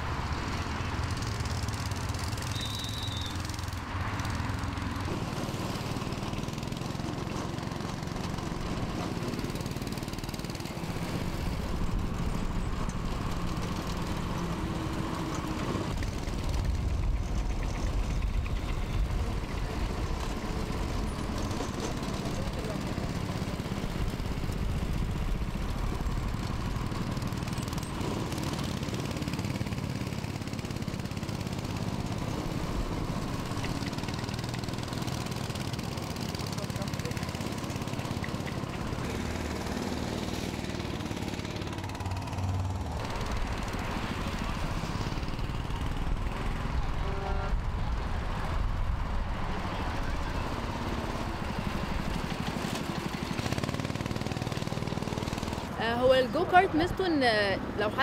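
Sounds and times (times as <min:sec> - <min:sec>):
go-kart engines passing: 0:00.0 - 0:58.0.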